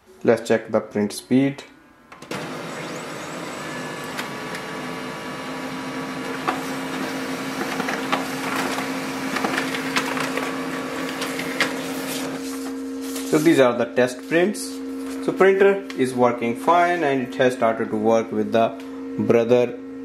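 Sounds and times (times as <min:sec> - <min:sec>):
paper feed clicks: 0:02.1 - 0:05.0, 0:06.2 - 0:12.6
laser printer whirring: 0:02.1 - 0:19.3.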